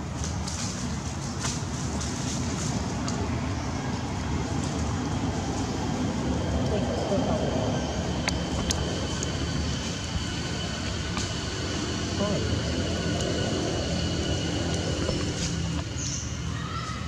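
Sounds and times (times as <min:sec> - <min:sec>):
steady low rumble: 0:00.0 - 0:16.6
distant voices: 0:00.0 - 0:17.0.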